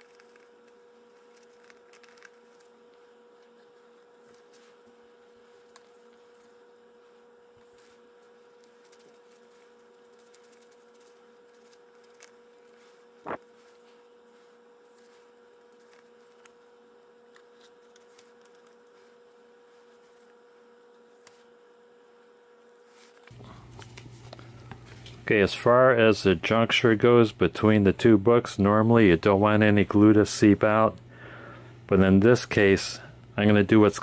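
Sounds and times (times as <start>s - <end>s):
faint electrical hum: 0.0s - 34.0s.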